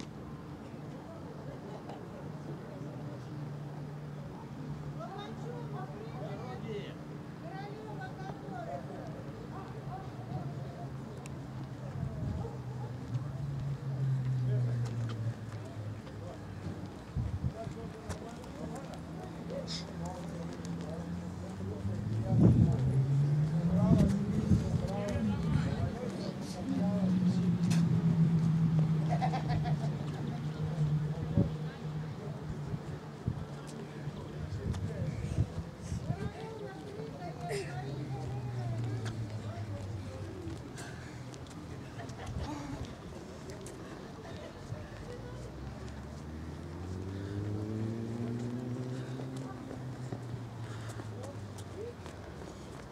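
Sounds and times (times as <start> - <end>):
distant people talking: 0.0 - 52.9
vehicle engine speeding up: 20.7 - 32.0, 45.6 - 51.9.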